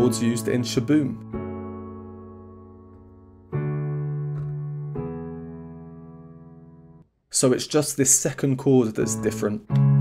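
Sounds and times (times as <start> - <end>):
piano chords ringing: 0.0 - 7.1, 8.5 - 10.0.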